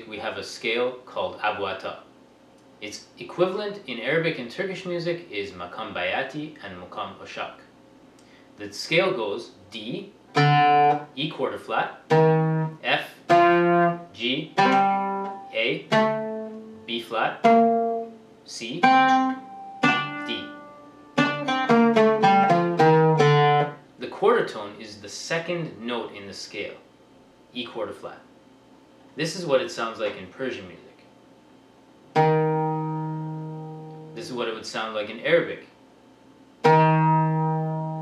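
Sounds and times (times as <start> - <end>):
oud plucked notes: 10.3 - 11.3, 12.0 - 23.9, 32.1 - 34.5, 36.6 - 38.0.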